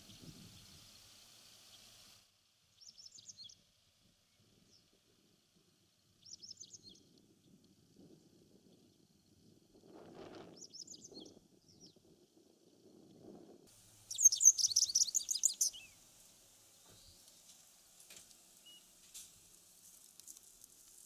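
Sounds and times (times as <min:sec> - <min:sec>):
bird twittering song: 0:00.0 - 0:02.0, 0:02.7 - 0:03.6, 0:06.2 - 0:07.6, 0:10.5 - 0:12.0, 0:14.0 - 0:16.0, 0:16.7 - 0:17.5, 0:18.6 - 0:18.9.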